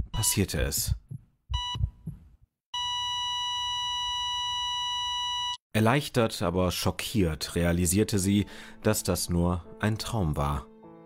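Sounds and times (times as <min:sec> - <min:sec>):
heart monitor flatline beep: 0:00.0 - 0:02.2, 0:02.8 - 0:05.6.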